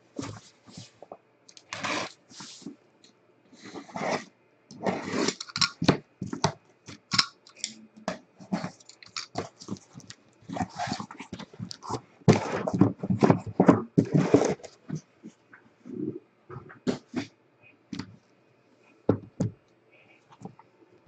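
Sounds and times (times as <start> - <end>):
box cutter cutting packing tape: 1.7 - 2.2
cardboard flaps scraping and rustling: 10.5 - 14.9.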